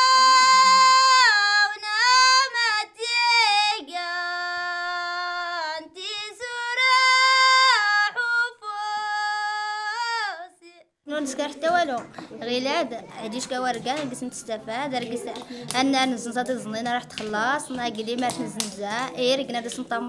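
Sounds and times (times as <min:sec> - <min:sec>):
high voice singing unaccompanied: 0:00.0 - 0:12.1.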